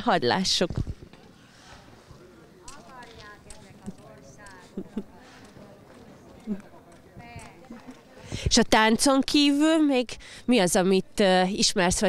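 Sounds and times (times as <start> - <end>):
faint background talk: 1.7 - 8.7.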